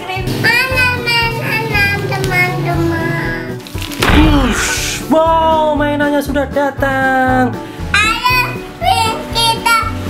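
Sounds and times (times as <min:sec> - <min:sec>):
child singing: 0:00.0 - 0:03.5, 0:08.0 - 0:10.0.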